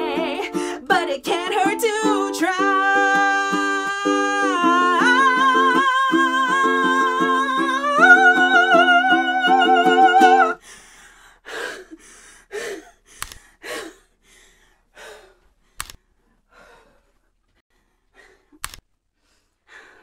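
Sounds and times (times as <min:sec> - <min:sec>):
person singing: 0:00.0 - 0:10.6
ukulele strumming: 0:00.0 - 0:10.6
heavy breaths and sighs: 0:10.6 - 0:20.0
sharp clicks: 0:13.2 - 0:13.5, 0:15.8 - 0:16.0, 0:18.6 - 0:18.9.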